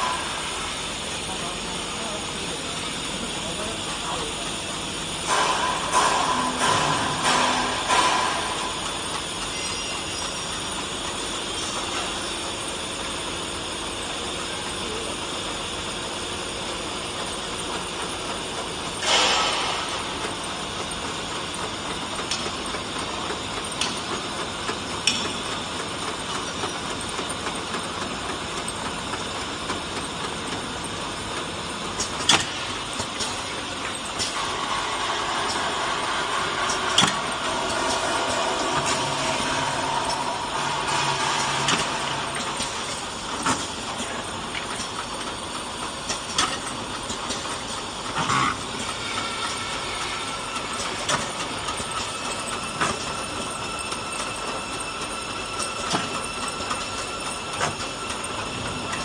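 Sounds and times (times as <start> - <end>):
machinery hum: 0.0 - 59.0.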